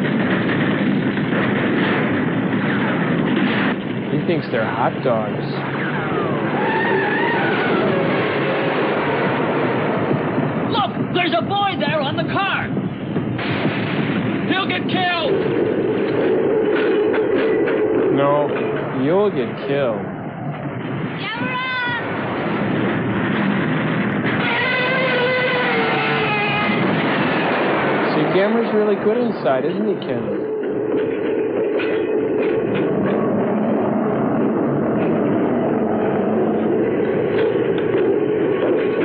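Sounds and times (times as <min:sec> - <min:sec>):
rumble of fire and explosions: 0:00.0 - 0:39.0
wavering high cries: 0:24.4 - 0:26.8.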